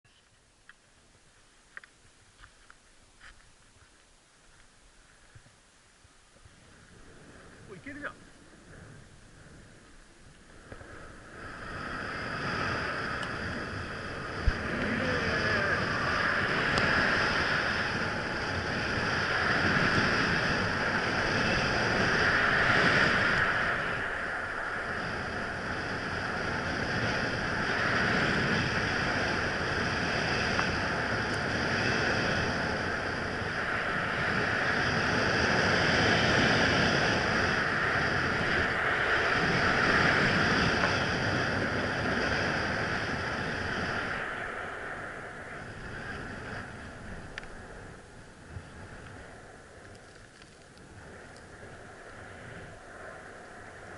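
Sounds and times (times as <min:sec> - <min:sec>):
wind rushing over camera: 0:00.1 - 0:53.9.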